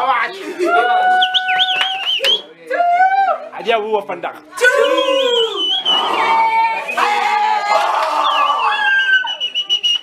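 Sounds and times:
shrill piercing whistle: 1.2s - 2.5s, 4.7s - 7.2s, 8.2s - 10.0s
party shouting: 4.5s - 9.4s.

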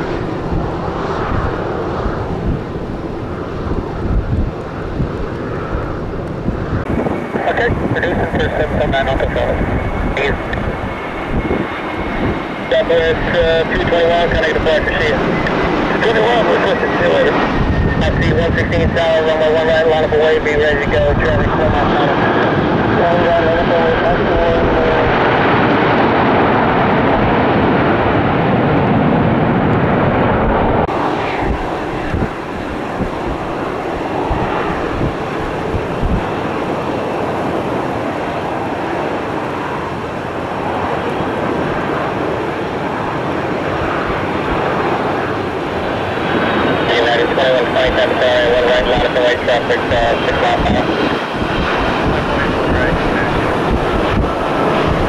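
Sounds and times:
jet engine noise: 0.0s - 55.0s.

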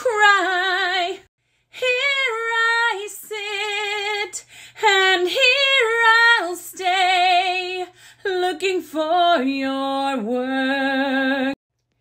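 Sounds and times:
woman singing with vibrato: 0.0s - 11.6s.

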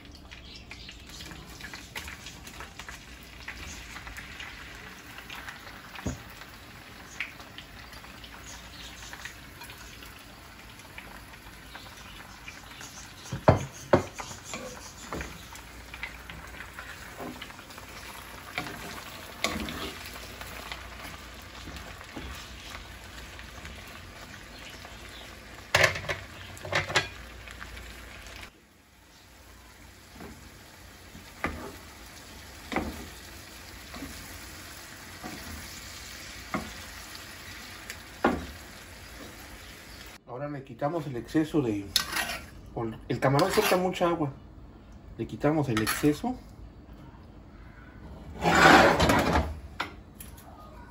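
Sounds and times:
shrimp sizzling in a skillet: 0.0s - 40.2s
spatula scraping and knocking pan: 18.6s - 20.7s, 31.4s - 31.8s, 41.9s - 42.6s, 43.2s - 44.0s, 45.7s - 46.2s.

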